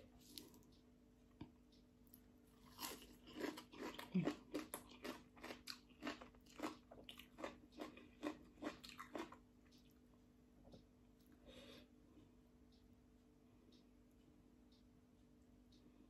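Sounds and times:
chewing crisp salad: 0:02.1 - 0:10.0.

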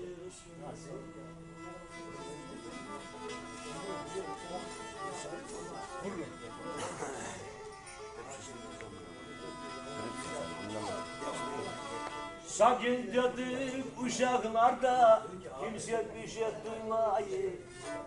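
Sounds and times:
men talking: 0:00.0 - 0:17.7
bowed string melody: 0:00.0 - 0:18.0.

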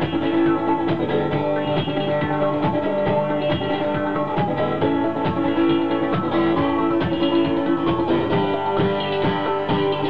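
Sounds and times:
acoustic guitar: 0:00.0 - 0:10.0
drum and hi-hat beat: 0:00.0 - 0:10.0.

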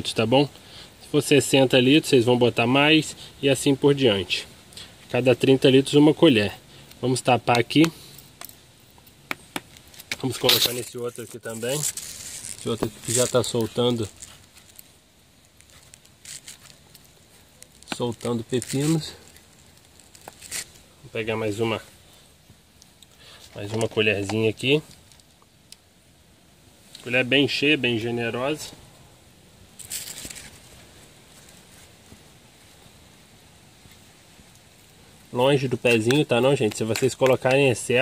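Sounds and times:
faint rustles and ticks: 0:06.3 - 0:25.9, 0:29.8 - 0:38.0
metal spoon scraping soil: 0:09.9 - 0:14.8, 0:17.7 - 0:20.8.

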